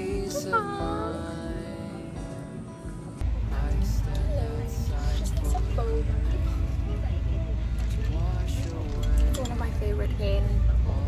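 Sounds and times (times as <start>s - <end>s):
background music: 0.0s - 11.0s
woman talking: 9.3s - 10.7s.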